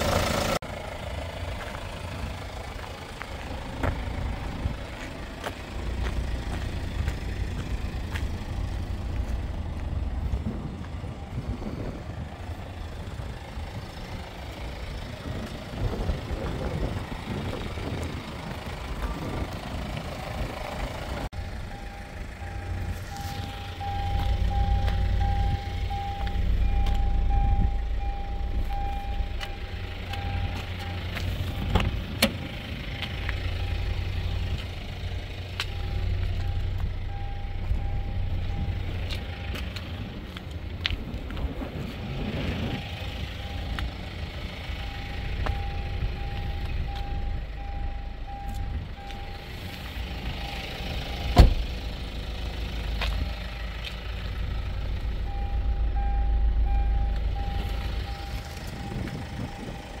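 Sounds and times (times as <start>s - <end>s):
car warning chime beeping: 21.3s - 32.0s, 33.0s - 39.8s, 42.8s - 51.4s, 54.5s - 60.0s.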